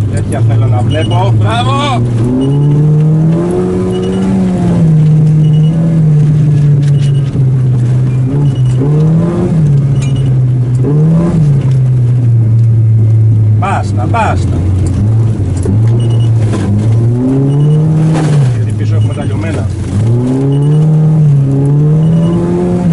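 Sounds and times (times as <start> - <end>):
car engine revving: 0.0 - 22.9.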